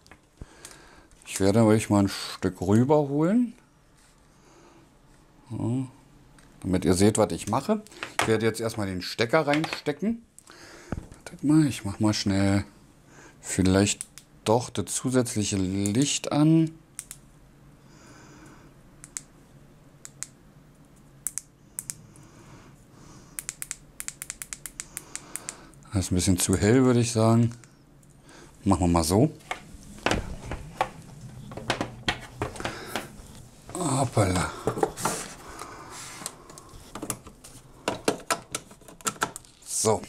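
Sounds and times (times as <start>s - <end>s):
small sharp clicks: 17.0s - 17.2s, 19.0s - 19.3s, 20.0s - 20.4s, 21.2s - 22.0s, 23.4s - 25.7s
cable knocking on a table: 29.5s - 33.2s.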